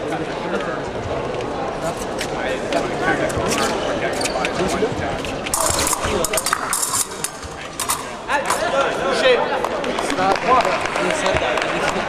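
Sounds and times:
voices in a large hall: 0.0 - 12.0
fencing blades clicking: 5.4 - 8.6.

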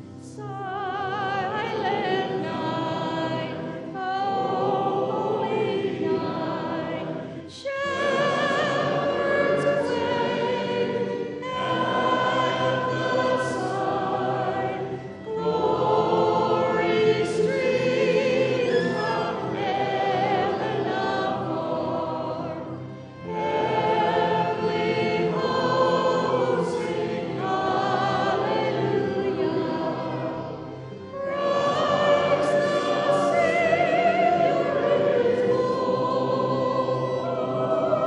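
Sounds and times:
choir singing: 0.0 - 38.0.

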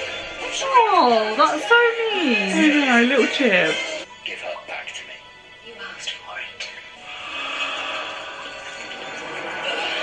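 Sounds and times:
background music: 0.0 - 10.0
dialogue: 0.1 - 7.1.

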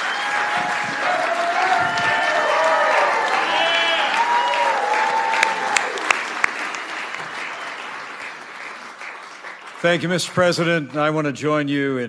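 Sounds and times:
audience applauding: 0.0 - 11.1.

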